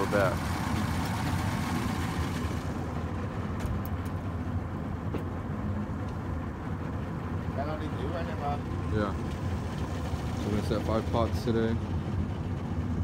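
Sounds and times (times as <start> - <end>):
outboard motors idling: 0.0 - 13.0.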